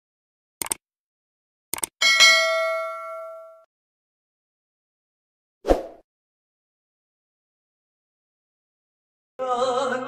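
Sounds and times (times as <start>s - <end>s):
bright bell chime: 2.0s - 3.7s.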